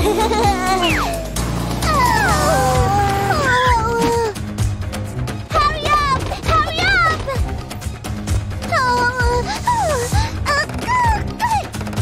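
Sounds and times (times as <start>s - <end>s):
children's background music: 0.0s - 12.0s
sad wail: 1.8s - 3.8s.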